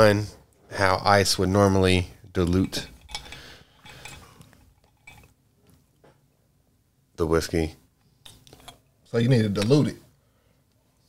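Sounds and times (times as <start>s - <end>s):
glasses clinking on a table: 2.9s - 4.3s.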